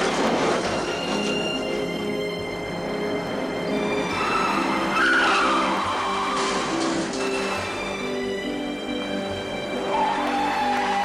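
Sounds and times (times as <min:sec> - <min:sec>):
action film score: 0:00.0 - 0:11.0
car tyres squealing: 0:03.8 - 0:08.2.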